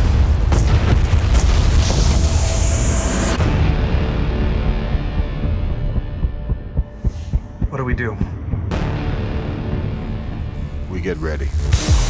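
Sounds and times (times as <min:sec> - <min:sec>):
deep heartbeat-like thumps: 0:03.4 - 0:10.8.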